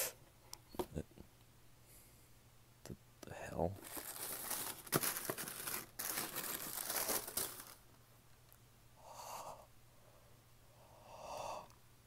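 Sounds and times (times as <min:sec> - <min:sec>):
tissue paper crinkling: 0:03.8 - 0:07.8.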